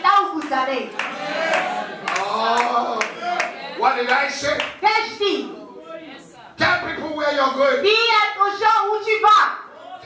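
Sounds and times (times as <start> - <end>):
hands clapping in rhythm: 0.0 - 5.1.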